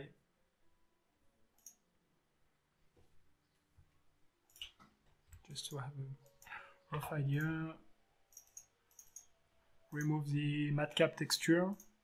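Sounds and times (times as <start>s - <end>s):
faint mouse click: 1.6s - 1.8s.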